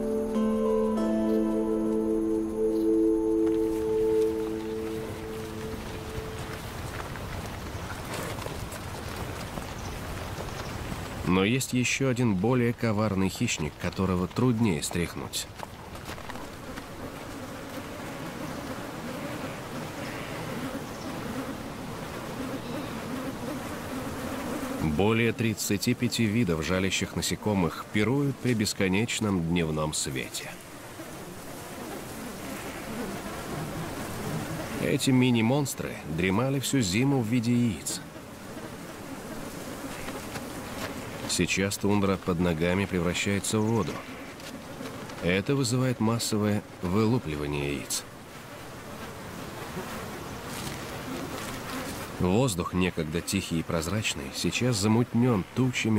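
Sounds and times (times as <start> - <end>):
insect swarm buzzing: 0.0 - 7.9, 16.3 - 26.5, 29.9 - 41.5, 46.6 - 52.4.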